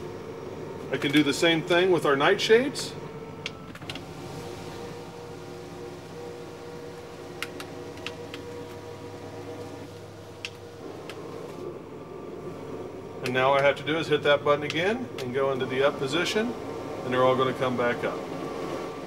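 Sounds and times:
electric motors humming: 0.0s - 19.0s.

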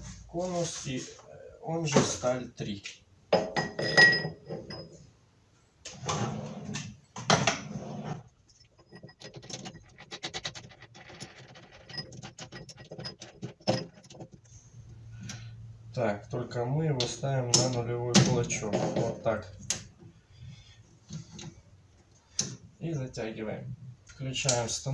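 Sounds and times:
metal clinks and knocks: 3.4s - 5.1s, 8.3s - 14.6s.

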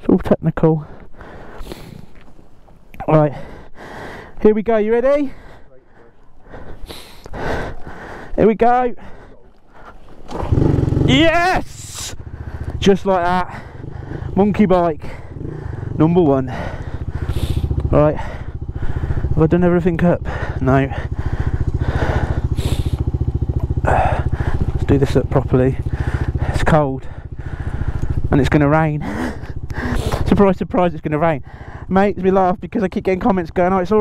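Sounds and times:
motorcycle engine idling: 0.8s - 34.0s
person breathing hard with effort: 0.9s - 2.2s, 3.3s - 4.4s, 5.3s - 8.4s, 9.0s - 10.1s, 12.2s - 12.8s, 13.5s - 14.4s, 15.0s - 19.4s, 20.2s - 24.8s, 25.8s - 28.3s, 29.0s - 30.3s, 31.4s - 31.9s.

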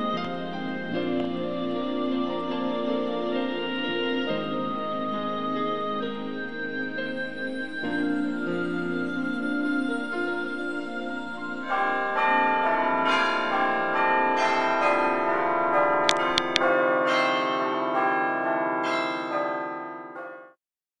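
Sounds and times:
church bells pealing: 0.0s - 20.6s.

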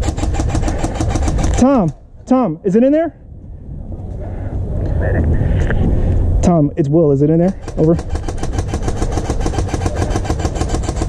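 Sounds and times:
low rumbling on microphone: 3.1s - 8.2s.

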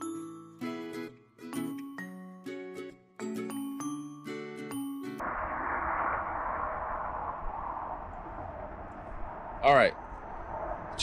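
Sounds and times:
bell-like chiming music: 0.0s - 5.2s.

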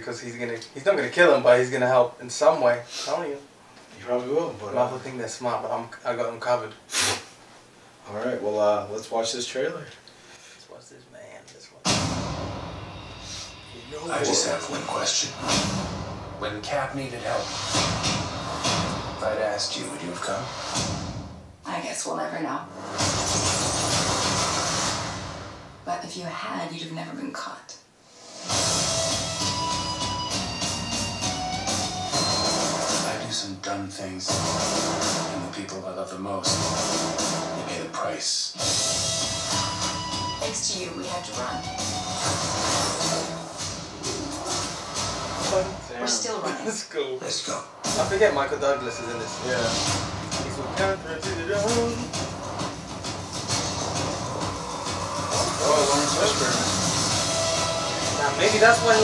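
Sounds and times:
short sharp hits: 11.8s - 13.5s
short sharp hit: 11.8s - 19.6s.

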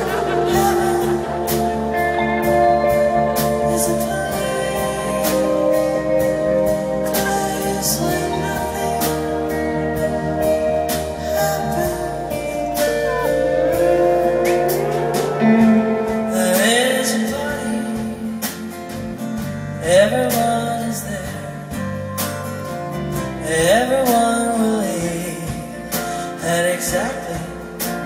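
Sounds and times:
woman singing: 0.0s - 18.6s
acoustic guitar: 0.0s - 28.0s
drums: 0.0s - 28.0s
electric guitar: 0.0s - 28.0s.

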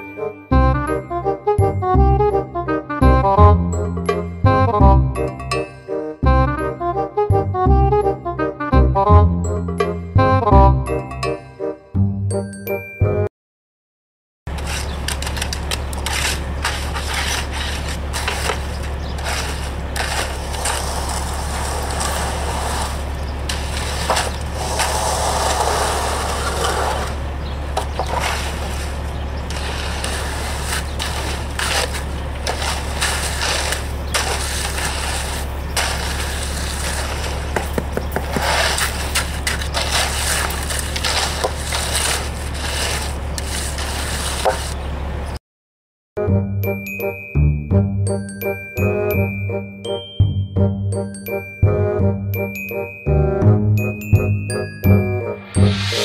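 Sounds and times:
tools scraping through wet concrete: 14.5s - 44.8s.

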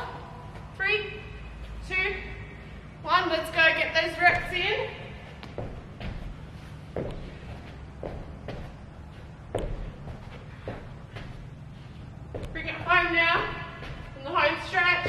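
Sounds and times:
low steady hum: 0.0s - 15.0s
thuds of hands and feet on floor: 5.4s - 11.5s.

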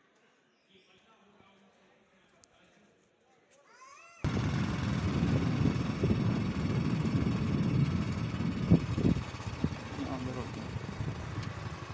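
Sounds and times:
low rumble of traffic: 4.3s - 11.9s.

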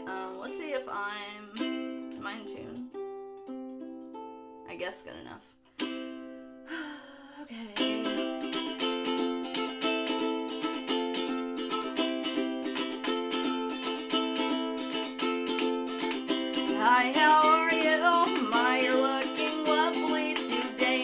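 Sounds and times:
ukulele strumming: 0.0s - 6.7s, 7.6s - 21.0s.

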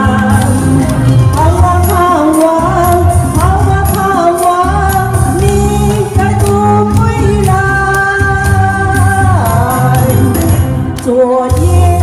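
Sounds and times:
karaoke backing track with beat: 0.0s - 12.0s
woman singing pop song: 0.0s - 12.0s.

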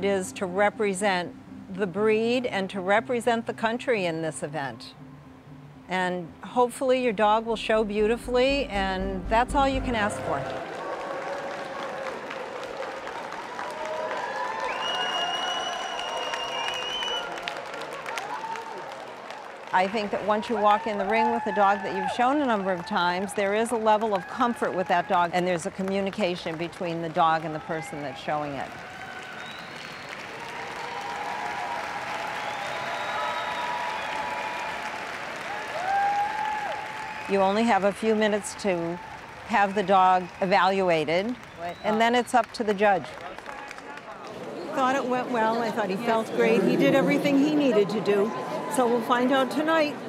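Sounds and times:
high steady tone: 7.4s - 10.6s
crowd voices: 7.8s - 11.0s, 43.7s - 50.0s
audience applauding: 10.1s - 49.8s.

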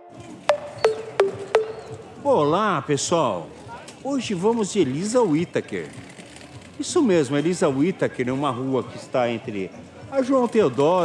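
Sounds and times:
intro jingle struck notes: 0.5s - 2.4s.

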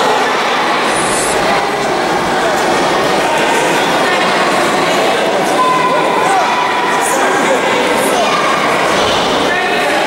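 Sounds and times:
chatter of many voices: 0.0s - 10.0s.

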